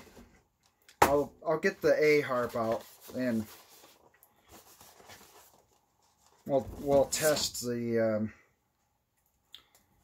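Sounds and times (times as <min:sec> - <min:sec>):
cardboard package handling: 0:02.3 - 0:07.4.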